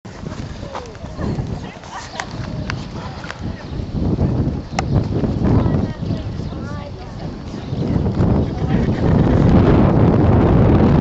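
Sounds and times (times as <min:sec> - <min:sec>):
indistinct voices: 0:00.1 - 0:10.0.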